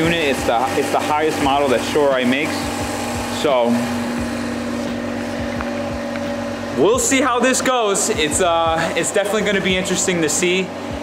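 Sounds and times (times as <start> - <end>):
rotary engine idling: 0.0 - 11.0
soft low thumps: 2.6 - 7.2, 8.2 - 10.0.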